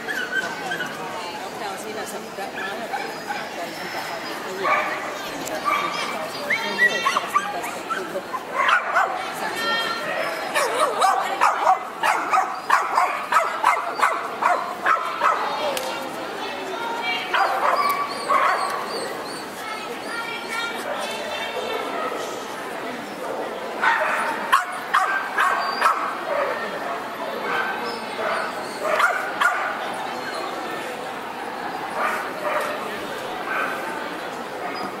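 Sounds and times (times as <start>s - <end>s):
dogs yipping and whimpering: 0.0s - 1.5s, 5.8s - 9.0s, 10.4s - 15.4s, 17.4s - 19.6s, 24.1s - 26.1s, 27.8s - 30.6s
crowd chatter: 0.0s - 35.0s.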